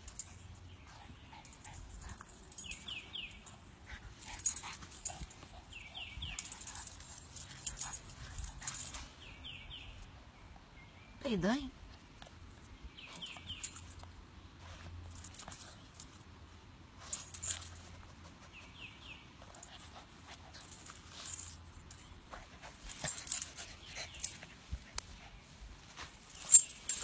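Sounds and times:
rustles and clicks in grass: 0.0s - 10.1s, 11.9s - 27.0s.

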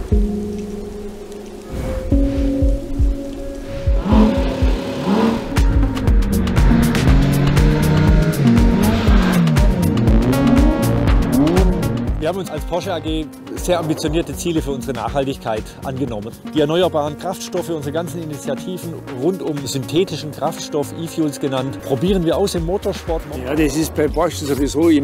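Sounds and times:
background music with a beat: 0.0s - 25.0s
car engines revving: 3.9s - 12.2s.

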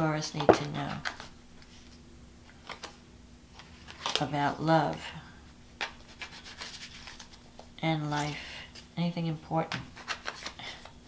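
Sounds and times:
cards being shuffled: 2.6s - 4.3s, 5.8s - 8.9s, 9.7s - 11.0s.

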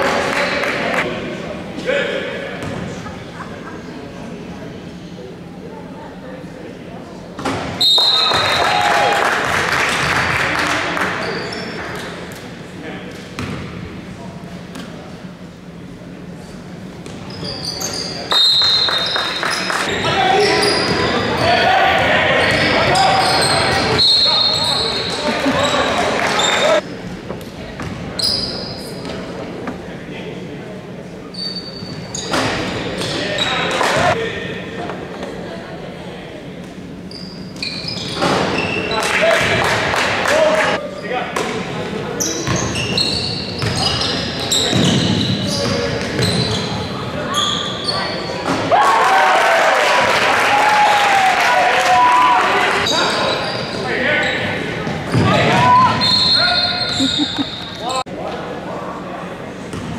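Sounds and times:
sneakers squeaking on court: 11.2s - 12.3s, 13.4s - 13.8s, 17.0s - 26.8s, 27.8s - 29.2s, 31.3s - 34.1s, 37.0s - 39.1s, 42.2s - 48.6s, 52.8s - 58.0s.

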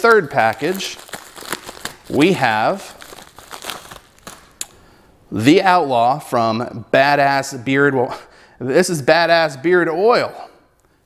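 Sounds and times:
paper package tearing and rustling: 0.0s - 4.7s.

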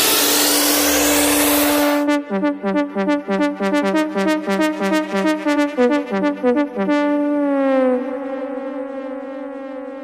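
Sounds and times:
synthesizer tone sliding down: 0.0s - 10.0s.

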